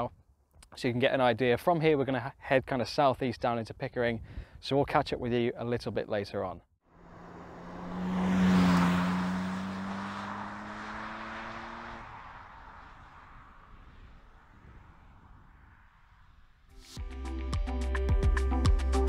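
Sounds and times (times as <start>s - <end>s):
car engine accelerating away: 6.9s - 16.3s
background music with a beat: 16.9s - 19.0s.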